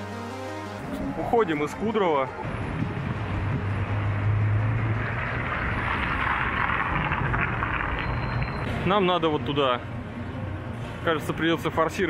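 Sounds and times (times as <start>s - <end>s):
vehicle passing: 1.7s - 8.2s
low engine hum: 2.4s - 8.6s.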